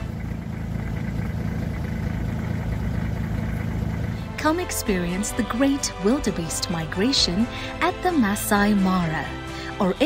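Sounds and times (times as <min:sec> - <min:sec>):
vehicle engine idling: 0:00.0 - 0:09.8.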